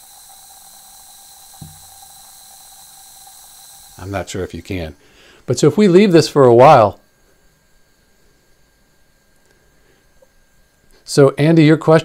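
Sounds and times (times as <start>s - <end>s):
metal fizzing in acid: 0.0s - 5.0s.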